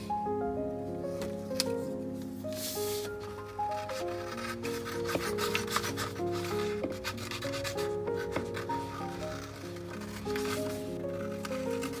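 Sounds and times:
soft instrumental music: 0.0 - 12.0
scissors cutting paper: 3.0 - 12.0.

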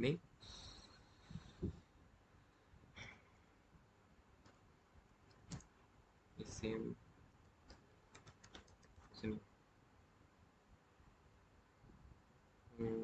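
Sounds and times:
typing on a computer keyboard: 7.6 - 9.1.

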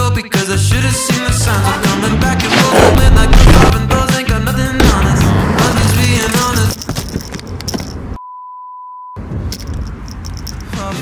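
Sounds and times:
background music: 0.0 - 6.8
steady test tone beep: 8.2 - 9.2.

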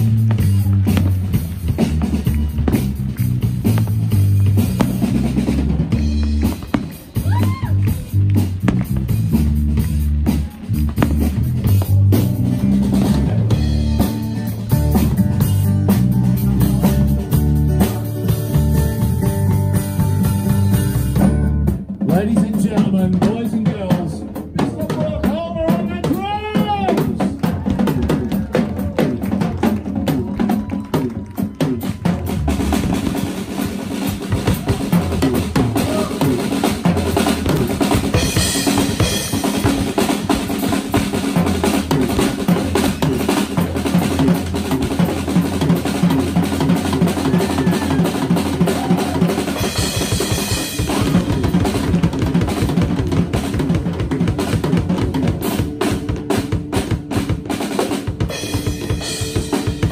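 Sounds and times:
drum kit beat: 0.0 - 59.9
live rock band playing: 0.0 - 59.9.

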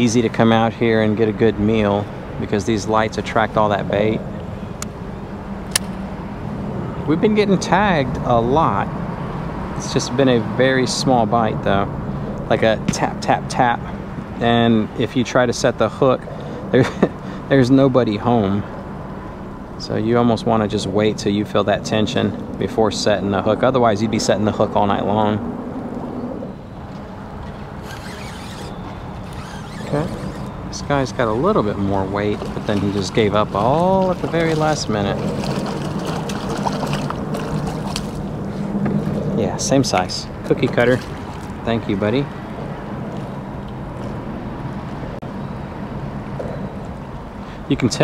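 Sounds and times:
sharp click: 5.7 - 6.0
motor rumble with hum: 24.4 - 47.4
fishing reel whirring: 27.5 - 30.7.

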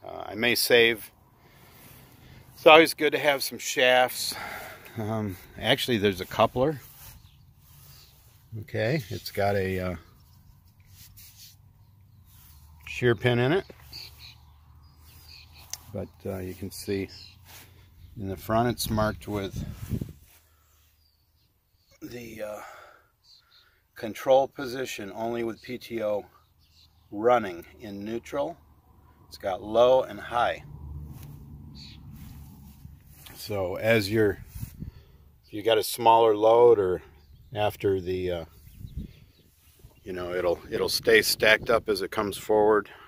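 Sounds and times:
soft rustles: 5.5 - 13.1, 31.0 - 35.1.

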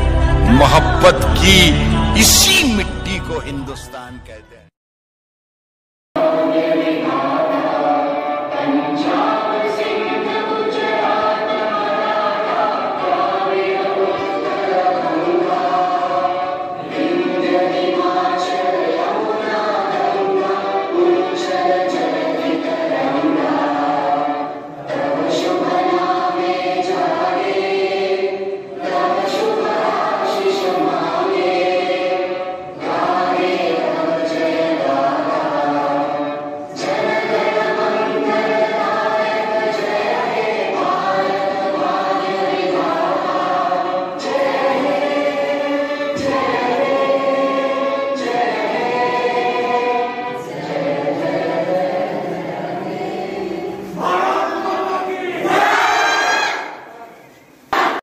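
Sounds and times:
young voices singing in unison: 6.2 - 58.0.

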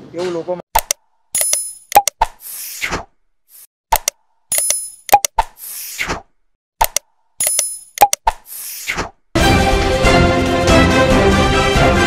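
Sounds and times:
quick clicks and pops: 0.7 - 9.2.

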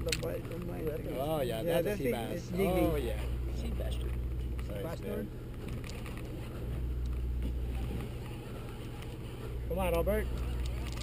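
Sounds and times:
boat machinery humming: 0.0 - 11.0.

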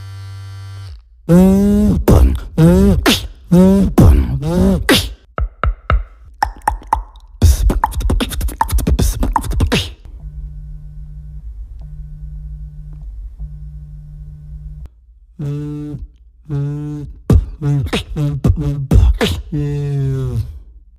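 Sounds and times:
beatboxing clicks and strokes: 1.3 - 10.1, 15.4 - 20.6
beatboxed low buzz: 1.3 - 20.6.

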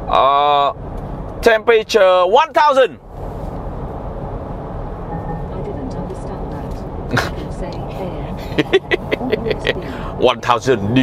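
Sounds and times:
car cabin road drone: 0.0 - 11.0.

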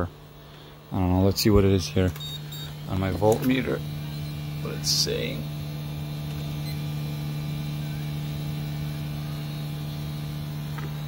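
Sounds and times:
heat pump unit humming: 0.0 - 11.0.

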